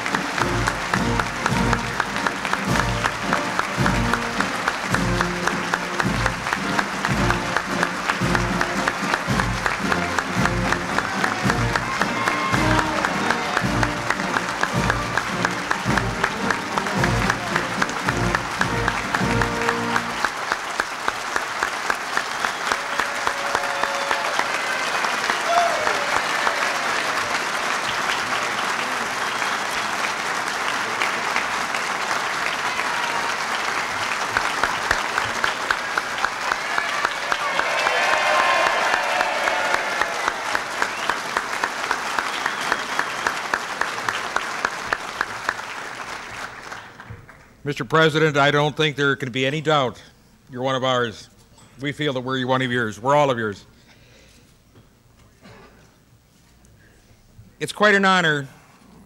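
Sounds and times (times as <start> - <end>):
music: 0.0 - 20.4
audience applauding: 0.0 - 48.1.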